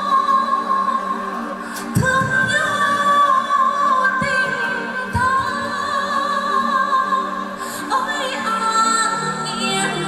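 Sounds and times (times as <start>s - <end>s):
accompanying music: 0.0s - 10.0s
woman singing into microphone: 0.0s - 10.0s.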